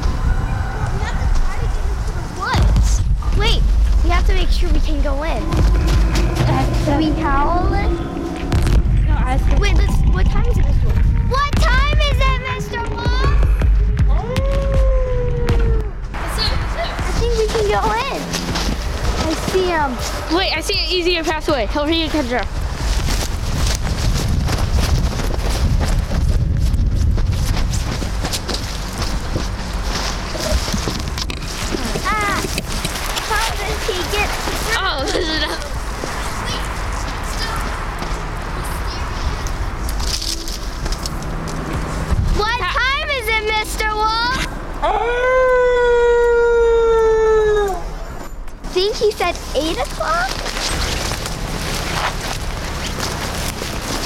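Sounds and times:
wind buffeting microphone: 0.0 - 44.8
wolf-like howl: 5.4 - 9.0, 44.8 - 48.0
footsteps crunching through snow: 16.4 - 20.6, 22.0 - 38.3, 48.7 - 54.0.

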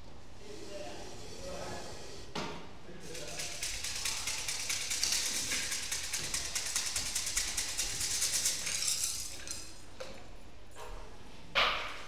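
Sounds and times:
fortune sticks rattling in a cup: 3.0 - 9.8.

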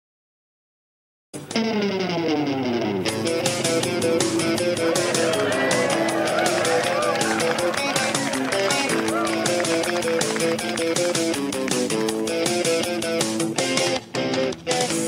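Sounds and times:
person singing: 4.6 - 10.7
pop song with guitar and drums: 8.5 - 15.0.

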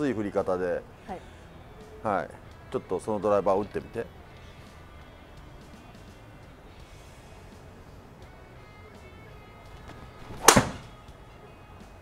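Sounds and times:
ball thudding on screen: 9.8 - 10.9
golf club striking ball: 9.8 - 11.0.

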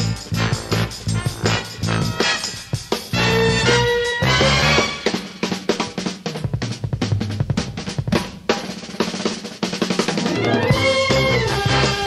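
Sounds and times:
drum kit snare and bass drum: 0.0 - 12.0.

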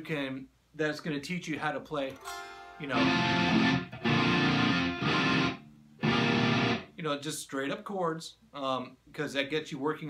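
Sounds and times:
electric guitar strumming chords: 2.1 - 6.9.

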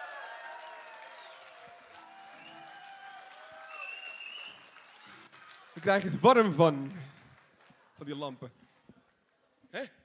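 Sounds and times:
light audience applause: 0.0 - 9.6.

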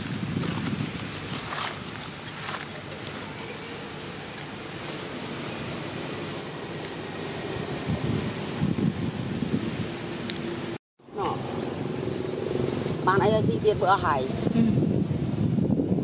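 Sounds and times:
low rumbling: 0.0 - 16.0
outdoor background noise: 0.0 - 16.0.

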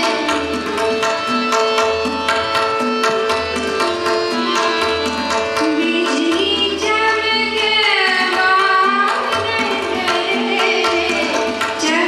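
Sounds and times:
tabla: 0.0 - 12.0.

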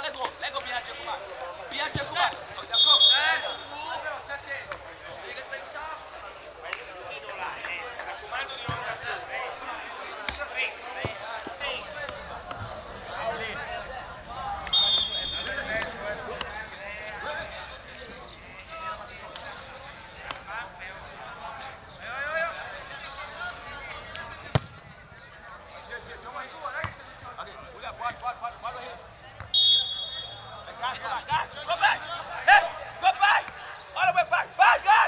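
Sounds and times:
players calling: 0.0 - 35.0
football kick thuds: 8.6 - 9.0, 24.5 - 24.8.

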